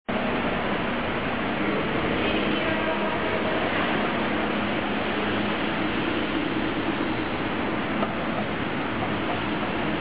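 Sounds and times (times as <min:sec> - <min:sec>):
car engine rolling slowly past: 0:00.1 - 0:10.0
echoing rumble and hiss: 0:00.1 - 0:10.0.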